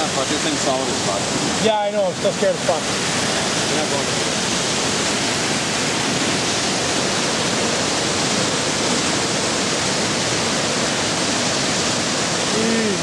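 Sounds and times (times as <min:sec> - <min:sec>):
water rushing over rocks: 0:00.0 - 0:13.0.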